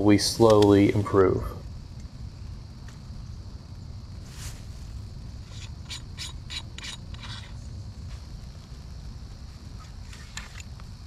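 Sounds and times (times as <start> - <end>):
steady low rumble: 0.0 - 11.0
tripod ratcheting clicks: 5.5 - 7.5.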